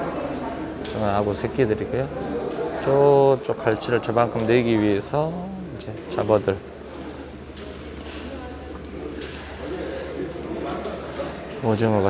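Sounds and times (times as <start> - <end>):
distant indistinct voices: 0.0 - 12.0
steady low hum: 0.0 - 12.0.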